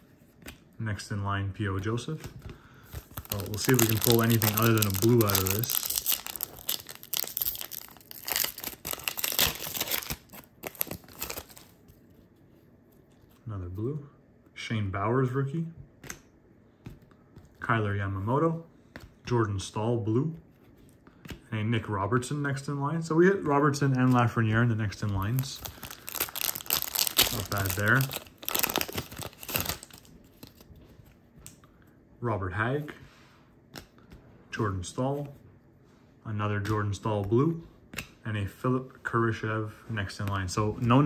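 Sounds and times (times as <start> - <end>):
cards rustling: 2.2 - 12.3, 23.7 - 31.2
foil wrapper crinkling: 3.0 - 11.8, 25.1 - 30.7.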